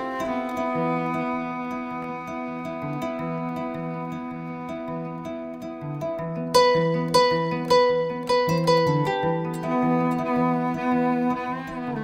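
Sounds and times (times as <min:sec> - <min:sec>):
bowed cello line: 0:00.0 - 0:12.0
plucked kora notes: 0:00.0 - 0:12.0.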